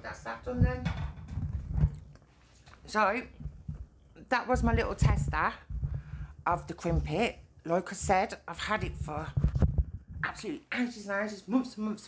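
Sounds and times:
dull low thumps: 0:00.5 - 0:02.1, 0:03.3 - 0:07.2, 0:08.0 - 0:10.3.

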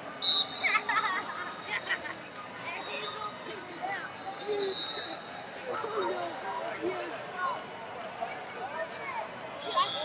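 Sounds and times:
referee's whistle blast: 0:00.2 - 0:00.6.

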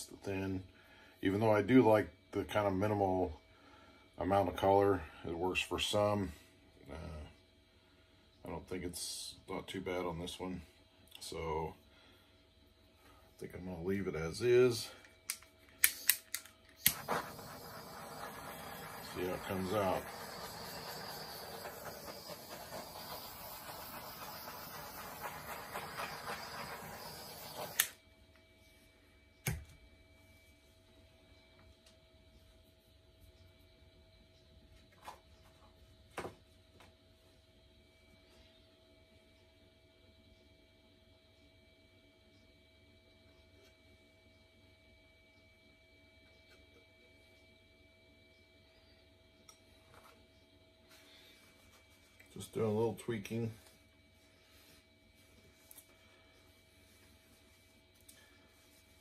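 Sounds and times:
faint room hum: 0:00.0 - 0:59.0
electric air blower rushing: 0:16.8 - 0:28.0.

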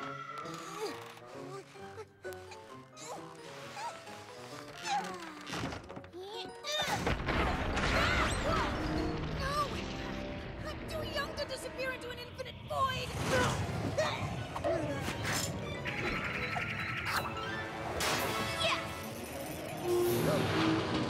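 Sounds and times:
cartoon background music: 0:00.0 - 0:21.0.

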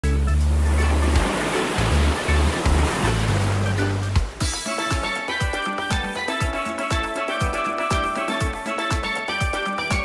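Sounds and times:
music with deep bass notes: 0:00.0 - 0:10.0
ocean surf washing on beach: 0:00.5 - 0:04.5.

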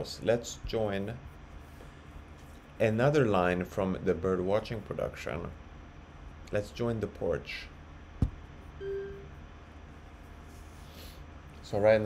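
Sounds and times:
short electronic beep: 0:08.8 - 0:09.4.

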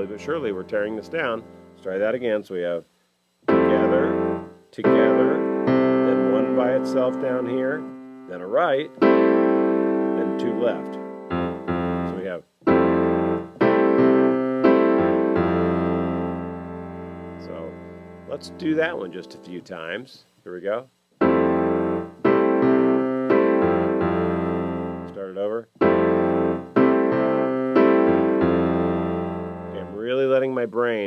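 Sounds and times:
piano chords and bass notes: 0:00.0 - 0:02.2, 0:03.4 - 0:19.7, 0:21.2 - 0:30.7.

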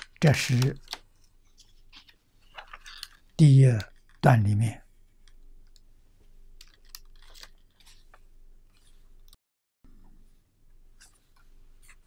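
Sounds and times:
paper rustling: 0:00.0 - 0:04.2, 0:06.5 - 0:09.3.

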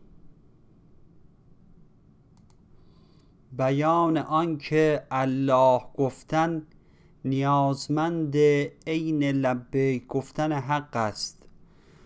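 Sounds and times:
low room hiss: 0:00.0 - 0:12.0
faint clicks: 0:02.3 - 0:02.6.

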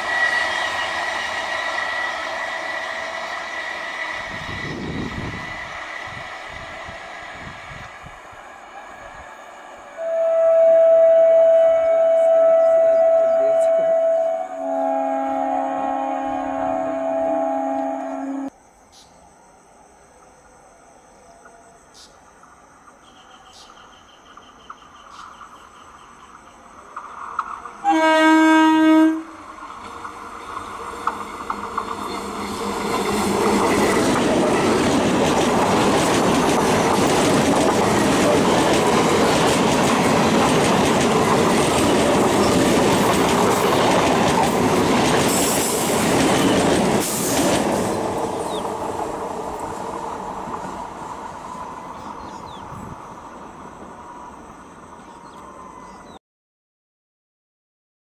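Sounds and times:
train horn: 0:00.0 - 0:05.3, 0:09.9 - 0:18.5, 0:27.8 - 0:29.6
train wheels rushing on rails: 0:00.0 - 0:10.0, 0:22.0 - 0:55.8.

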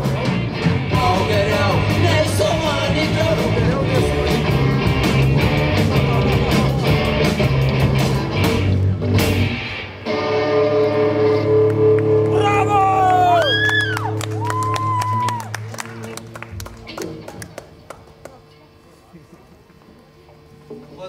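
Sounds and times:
high gliding guitar notes: 0:00.0 - 0:17.3
electric rock band chord: 0:00.0 - 0:18.5
audience clapping and cheering: 0:11.6 - 0:18.6.

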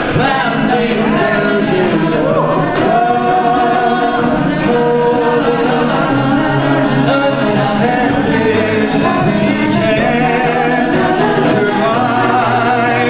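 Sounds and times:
a cappella group singing: 0:00.0 - 0:13.0.

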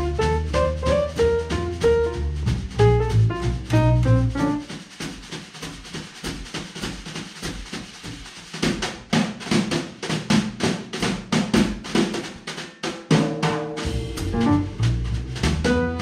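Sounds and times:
jazz drum solo: 0:00.0 - 0:16.0.

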